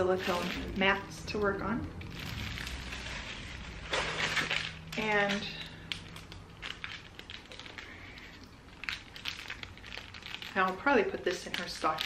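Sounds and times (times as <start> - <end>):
plastic packaging crinkling: 0.0 - 12.0.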